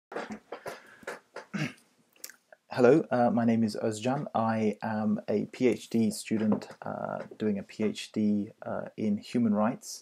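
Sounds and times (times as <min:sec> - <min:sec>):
rustles and bumps near microphone: 0:00.1 - 0:01.7, 0:06.1 - 0:08.0.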